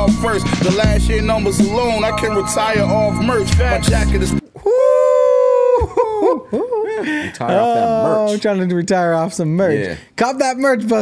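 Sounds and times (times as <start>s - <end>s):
men laughing hard: 4.7s - 8.0s.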